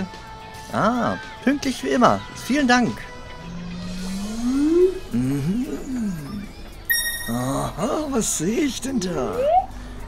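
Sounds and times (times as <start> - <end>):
bright chime: 6.9 - 7.8
man's voice rising in pitch: 7.2 - 8.2.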